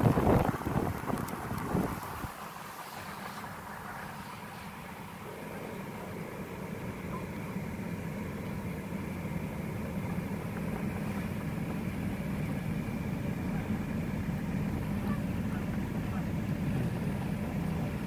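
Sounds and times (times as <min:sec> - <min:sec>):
car engine idling: 0:00.0 - 0:18.0.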